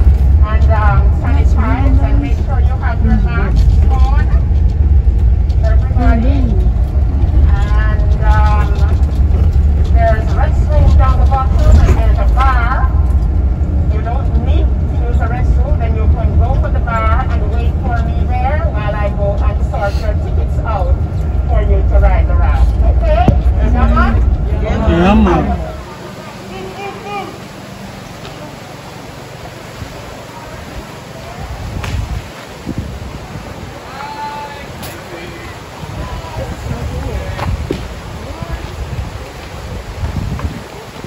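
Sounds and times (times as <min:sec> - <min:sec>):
vehicle rumble from inside cabin: 0:00.0 - 0:34.3
indistinct voices talking: 0:00.4 - 0:31.7.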